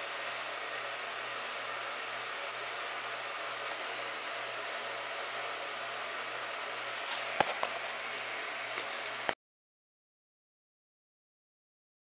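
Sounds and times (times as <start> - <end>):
background hiss: 0.0 - 9.4.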